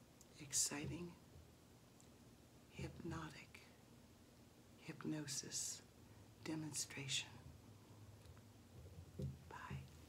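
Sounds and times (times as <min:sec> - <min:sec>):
person whispering: 0:02.7 - 0:03.7, 0:09.5 - 0:10.0.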